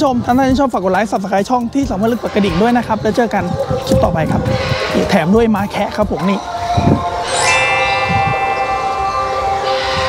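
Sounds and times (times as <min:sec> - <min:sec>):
bell-like chime ringing: 0:07.2 - 0:10.0.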